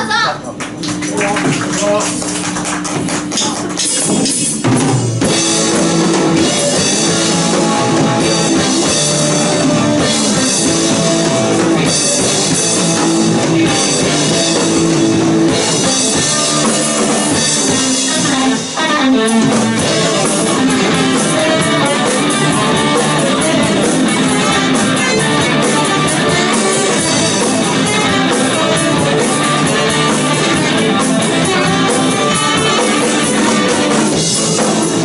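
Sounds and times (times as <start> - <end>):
live rock band playing: 0.9 - 35.0.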